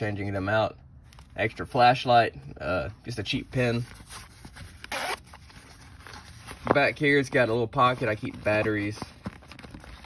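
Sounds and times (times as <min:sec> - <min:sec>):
fabric handling: 0:03.3 - 0:10.0
zipper pulled open: 0:04.1 - 0:06.3.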